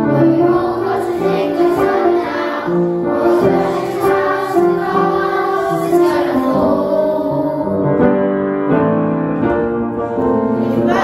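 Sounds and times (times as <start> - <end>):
children's choir singing: 0.0 - 8.2, 10.4 - 11.0.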